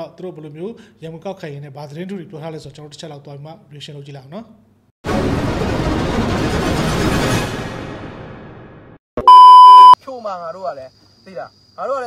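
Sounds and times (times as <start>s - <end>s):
loud electronic beep tone: 9.2s - 10.0s.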